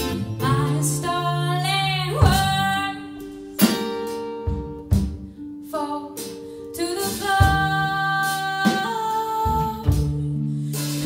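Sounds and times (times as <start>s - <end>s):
woman singing: 0.0s - 3.7s, 5.6s - 11.0s
plucked acoustic guitar: 0.0s - 11.0s.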